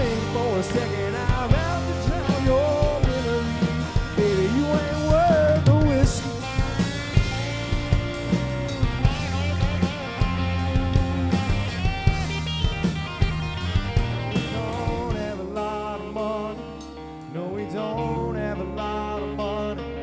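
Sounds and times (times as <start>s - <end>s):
electric guitar lead notes: 0.0s - 20.0s
rock band playing instrumental: 0.0s - 20.0s.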